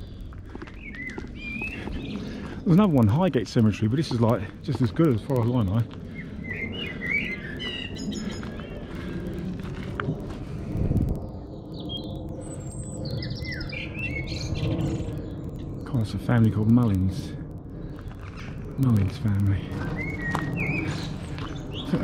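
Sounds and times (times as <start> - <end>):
birds chirping: 0.0 - 22.0
low rumble: 0.0 - 22.0.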